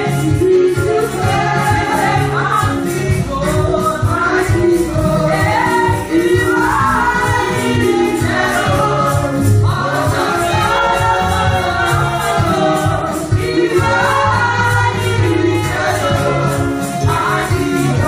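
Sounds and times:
backing music with bass and beat: 0.0s - 18.0s
women's group singing gospel: 0.0s - 18.0s.

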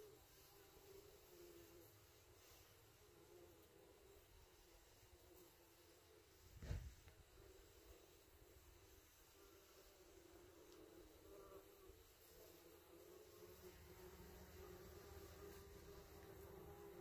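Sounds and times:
faint buzzing of bumblebees: 0.0s - 17.0s
brief low thump: 6.6s - 7.1s.

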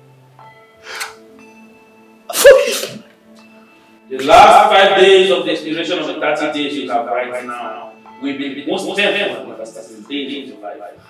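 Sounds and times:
soft background music: 0.0s - 11.0s
man's sharp vocal outburst: 2.3s - 3.0s.

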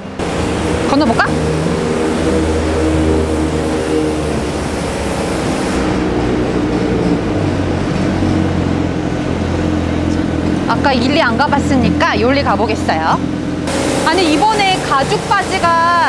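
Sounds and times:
street noise: 0.0s - 16.0s
vehicle engine humming: 0.0s - 16.0s.

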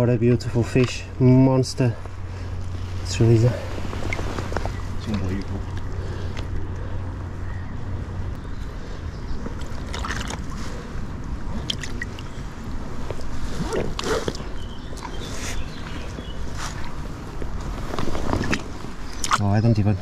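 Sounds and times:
river water sloshing and splashing: 9.5s - 15.4s
short splashes: 9.6s - 10.6s.

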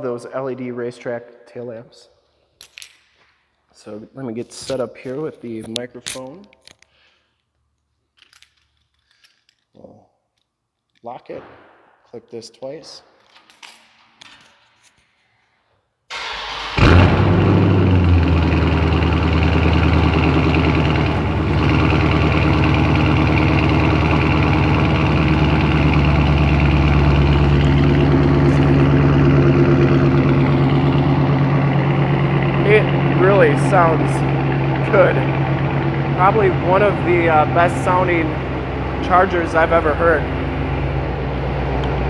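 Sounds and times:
car engine starting and idling: 16.1s - 42.0s.

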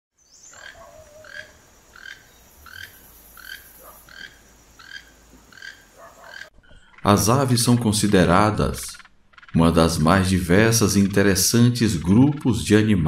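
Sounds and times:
toucan croaking call: 0.4s - 12.6s.

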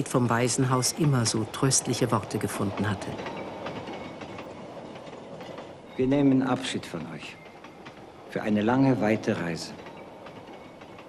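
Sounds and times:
train wheels on rails: 0.0s - 11.0s.

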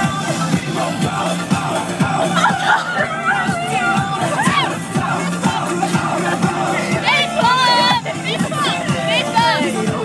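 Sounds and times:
girls shouting and singing: 0.0s - 10.0s
music playing in car: 0.0s - 10.0s.

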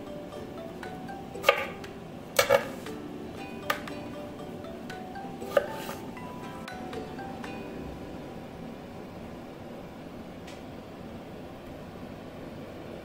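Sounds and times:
soft background music: 0.0s - 9.3s.

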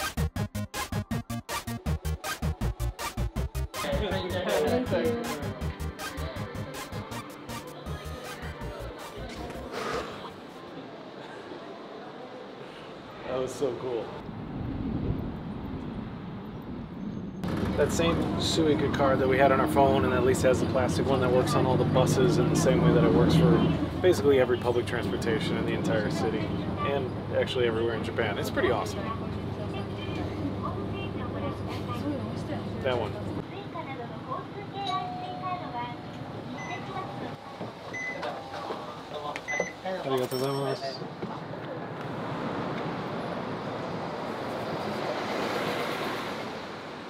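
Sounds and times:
man speaking: 3.8s - 5.6s
voices: 3.8s - 14.2s, 17.6s - 44.0s
bus running noise: 15.3s - 47.0s.

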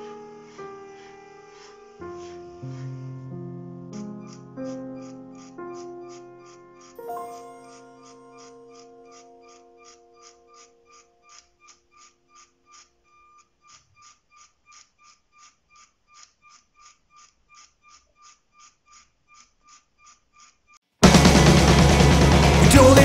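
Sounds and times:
faint ringing ticks: 4.2s - 20.8s
held music chord: 7.0s - 10.2s, 21.0s - 23.0s.

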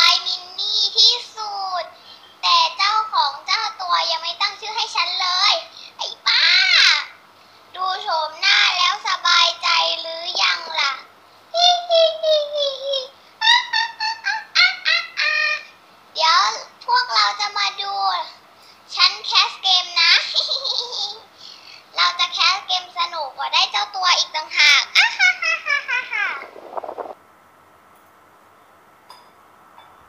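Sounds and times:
girl making squeaky syllables: 11.6s - 15.7s.

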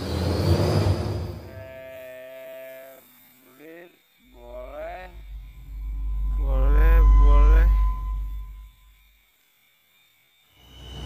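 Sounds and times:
low hum: 4.3s - 9.2s.

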